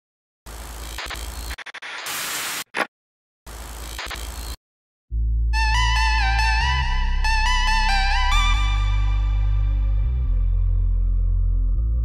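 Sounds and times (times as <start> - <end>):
static crackle: 0.5 - 2.9
low hum: 9.0 - 12.0.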